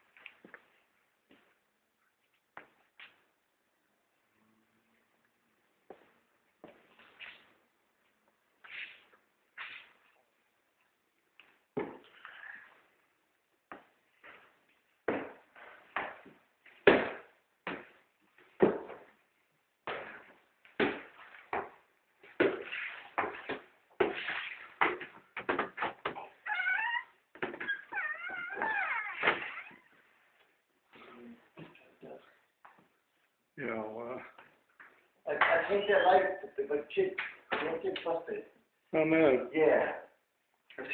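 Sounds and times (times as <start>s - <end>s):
cat meowing: 26.4s - 30.0s.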